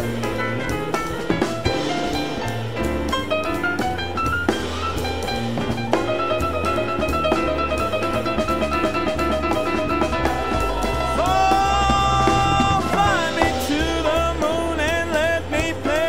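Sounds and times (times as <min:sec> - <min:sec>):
bass: 0:00.0 - 0:16.0
drum kit: 0:00.0 - 0:16.0
piano improvising: 0:00.0 - 0:16.0
steady cymbal pattern: 0:07.7 - 0:16.0
wordless scat singing: 0:10.0 - 0:16.0.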